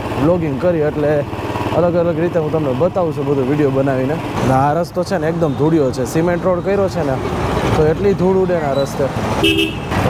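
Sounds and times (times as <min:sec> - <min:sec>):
motorcycle engine and road noise: 0:00.0 - 0:10.0
man talking: 0:00.2 - 0:09.2.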